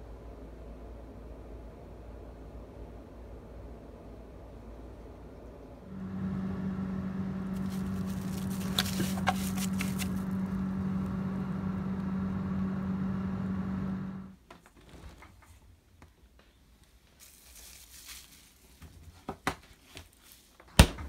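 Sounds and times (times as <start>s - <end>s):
steady motor hum: 5.8s - 14.4s
sharp clicks and rustles: 7.5s - 10.6s.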